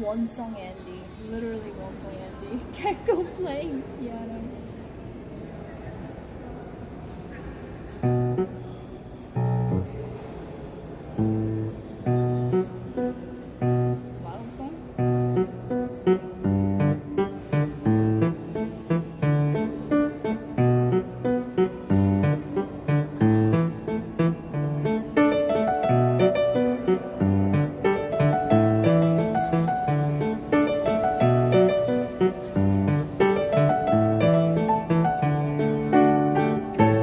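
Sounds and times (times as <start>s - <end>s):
grand piano tune: 8.0s - 37.0s.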